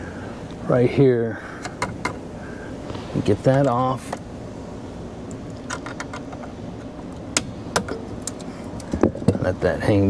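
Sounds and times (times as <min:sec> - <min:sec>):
low steady background hum: 0:00.0 - 0:10.0.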